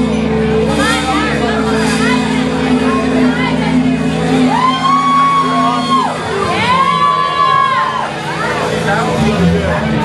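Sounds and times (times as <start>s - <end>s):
bass and drums: 0.0s - 10.0s
sliding sustained lead notes: 0.0s - 10.0s.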